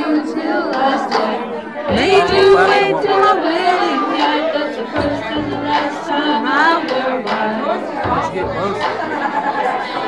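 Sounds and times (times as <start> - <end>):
woman singing karaoke: 0.0 - 8.8
bar crowd chatter: 0.0 - 10.0.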